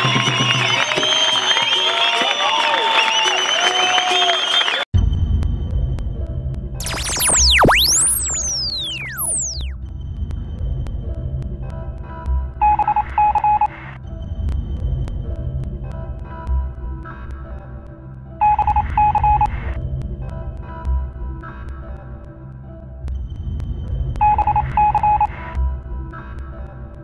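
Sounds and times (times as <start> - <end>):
electronic telephone beeps: 6.8 - 9.8, 12.6 - 13.7, 18.4 - 19.6, 24.2 - 25.3
pulsing electronic music: 6.8 - 9.8.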